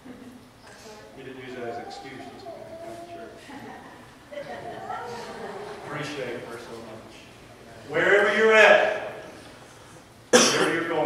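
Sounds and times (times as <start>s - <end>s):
man coughing: 10.3s - 10.9s.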